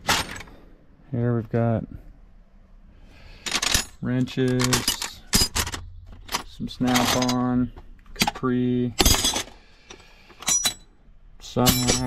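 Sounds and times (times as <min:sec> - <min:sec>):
steel wrenches clinking: 0:00.0 - 0:00.6, 0:03.4 - 0:07.5, 0:09.0 - 0:09.6, 0:10.4 - 0:10.9, 0:11.6 - 0:12.0.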